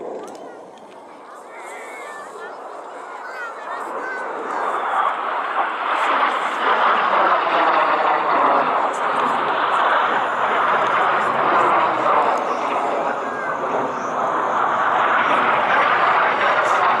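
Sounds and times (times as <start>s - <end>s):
jet engine rushing: 0.0s - 17.0s.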